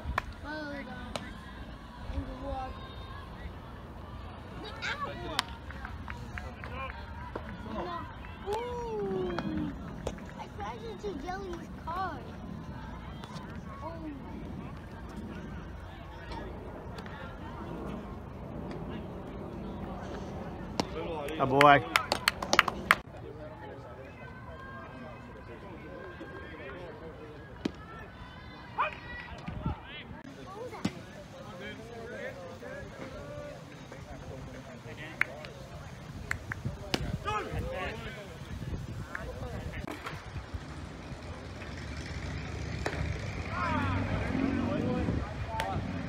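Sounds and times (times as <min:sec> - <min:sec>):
distant voices: 0:00.0 - 0:46.0
person clapping: 0:21.6 - 0:23.0
vehicle engine rumble: 0:30.2 - 0:46.0.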